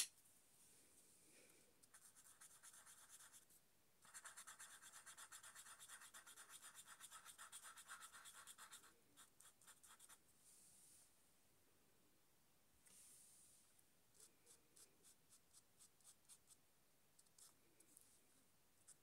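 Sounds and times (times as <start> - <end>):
marker pen rubbing on paper: 1.9 - 10.2.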